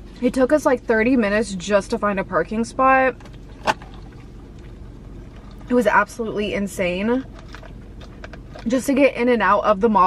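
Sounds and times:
car cabin hum: 0.0s - 10.0s.

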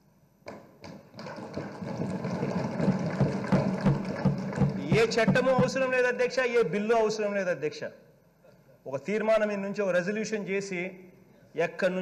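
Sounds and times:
people thumping desks: 0.5s - 5.8s.

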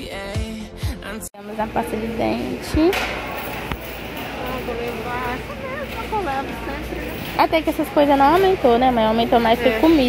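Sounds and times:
faint indistinct voices: 1.4s - 10.0s.

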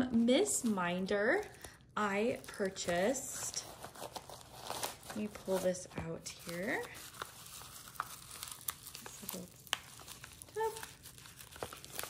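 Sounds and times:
packaging crinkling: 1.4s - 12.0s.

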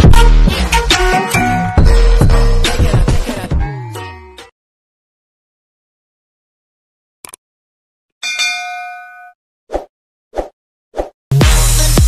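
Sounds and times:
electronic music with heavy bass: 0.0s - 3.8s, 11.3s - 12.0s
bright bell-like ding: 8.2s - 9.4s.

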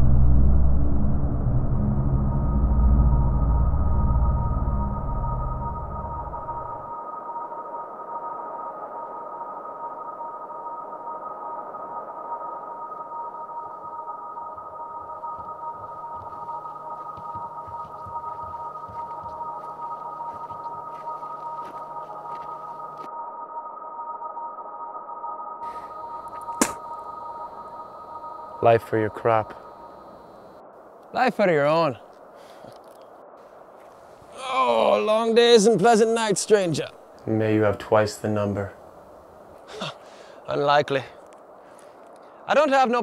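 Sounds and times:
high two-tone drone: 0.0s - 30.6s
sharp click: 26.5s - 26.8s.

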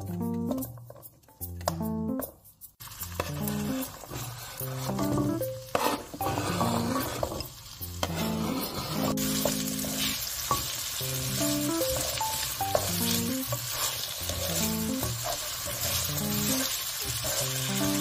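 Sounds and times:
soft background music: 0.0s - 18.0s
potatoes sizzling in a pan: 2.8s - 18.0s.

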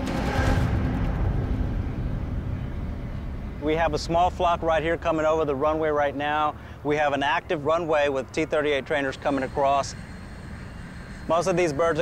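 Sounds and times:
jet engine rumble: 0.0s - 12.0s.

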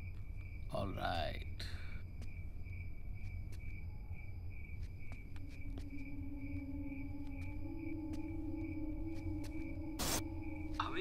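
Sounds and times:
pulsing cricket-like chirp: 0.0s - 11.0s
sustained low drone: 5.6s - 11.0s.

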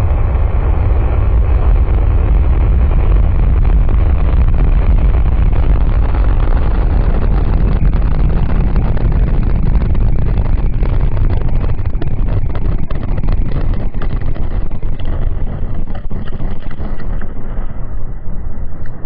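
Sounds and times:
rocket engines rumbling: 0.0s - 19.0s.

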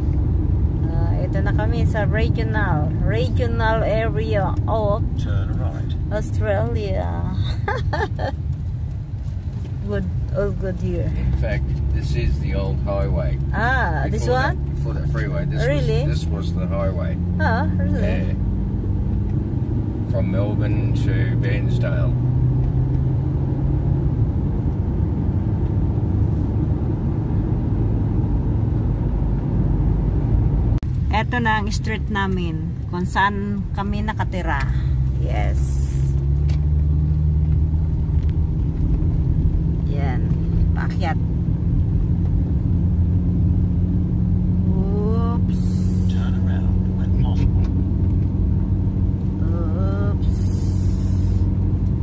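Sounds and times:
car road and engine rumble: 0.0s - 52.0s
rising voice-like tone: 17.4s - 18.4s.

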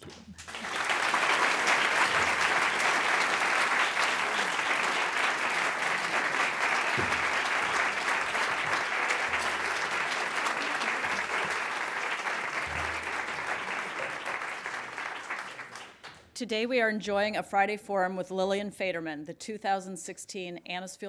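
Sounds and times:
audience applauding: 0.0s - 16.2s.

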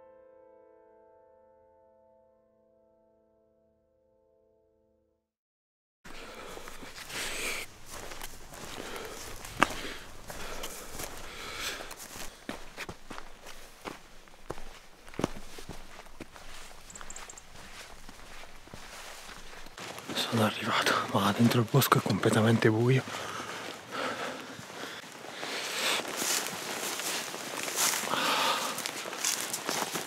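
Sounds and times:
clothing and gear rustling: 6.1s - 21.0s, 22.0s - 30.0s
footsteps on stony path: 6.1s - 30.0s.

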